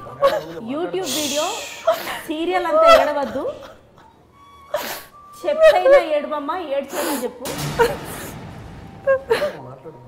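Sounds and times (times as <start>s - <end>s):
faint music with steady tone: 0.0s - 10.0s
woman sobbing: 1.6s - 4.1s, 4.7s - 8.1s.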